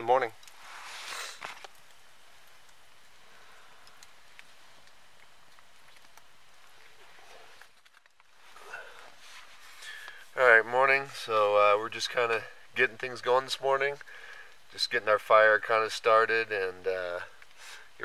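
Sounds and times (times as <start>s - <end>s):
faint outdoor hiss: 0.0s - 18.0s
small ticks: 1.4s - 7.0s.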